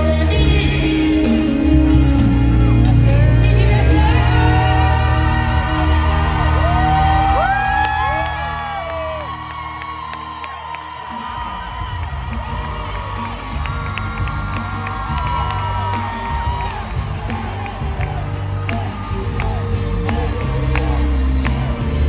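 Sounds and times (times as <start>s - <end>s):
live band music: 0.0s - 10.0s, 11.1s - 22.0s
crowd whooping and cheering: 2.6s - 22.0s.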